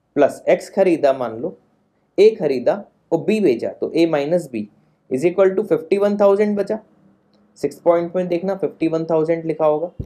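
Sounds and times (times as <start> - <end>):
man talking: 0.2 - 1.6, 2.2 - 6.9, 7.6 - 10.0.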